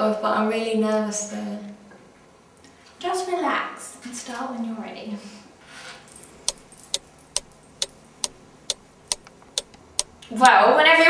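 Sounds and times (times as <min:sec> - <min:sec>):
sharp evenly spaced ticks: 0:06.2 - 0:10.6.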